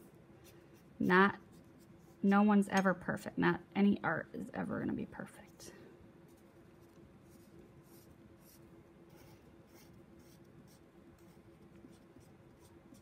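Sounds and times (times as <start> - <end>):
marker scratching on paper: 6.3 - 13.0.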